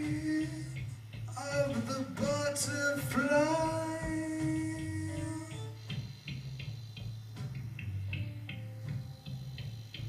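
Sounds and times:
bass guitar low notes: 0.0s - 10.0s
soft drum kit ticks: 0.0s - 10.0s.

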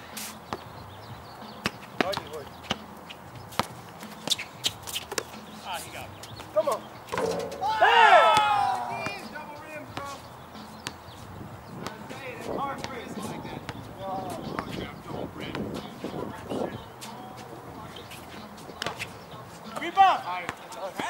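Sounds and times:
players calling out: 6.7s - 10.1s
basketball bouncing on hard court: 7.1s - 7.7s
man shouting loudly: 7.6s - 9.3s.

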